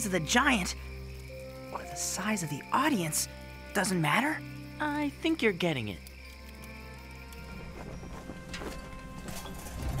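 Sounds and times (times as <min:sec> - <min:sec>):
soundtrack music with low notes: 0:06.4 - 0:10.0.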